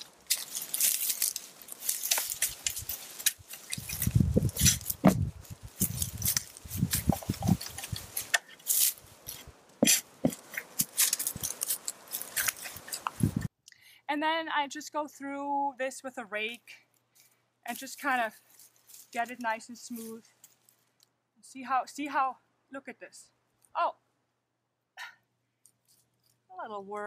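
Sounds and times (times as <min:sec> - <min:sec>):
fork crunching into garden soil: 0:00.0 - 0:13.5, 0:17.2 - 0:19.2.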